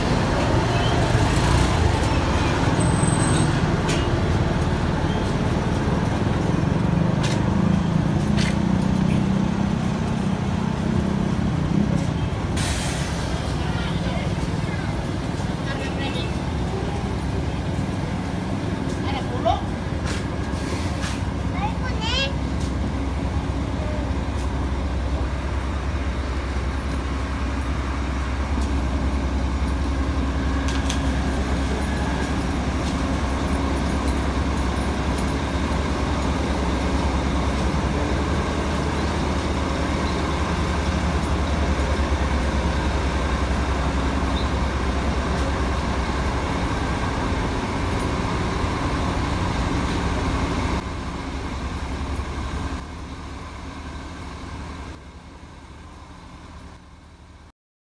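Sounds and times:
heavy truck engines rumbling: 0:00.0 - 0:57.5.

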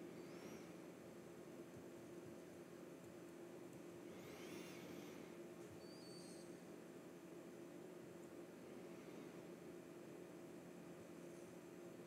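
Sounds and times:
faint high-pitched chirps: 0:00.0 - 0:00.8, 0:04.1 - 0:05.0, 0:05.7 - 0:06.6
steady low hum: 0:00.0 - 0:12.0.

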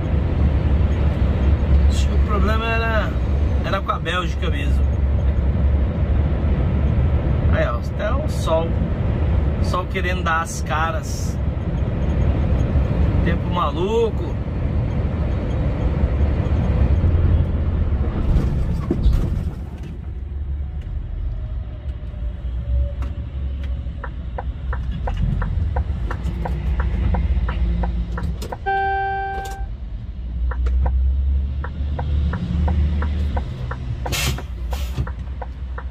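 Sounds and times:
truck engine and tyres rumbling: 0:00.0 - 0:35.9
regular ticking: 0:23.8 - 0:28.8, 0:30.3 - 0:35.9
horn tone: 0:28.6 - 0:29.7.

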